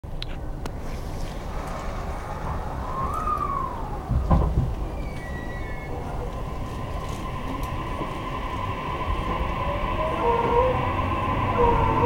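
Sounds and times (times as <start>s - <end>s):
train low rumble: 0.0s - 12.0s
loud low thump: 4.1s - 4.9s.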